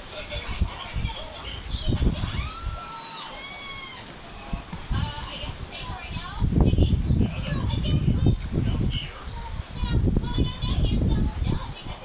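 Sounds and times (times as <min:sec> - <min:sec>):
rooster crowing: 0:02.2 - 0:04.6.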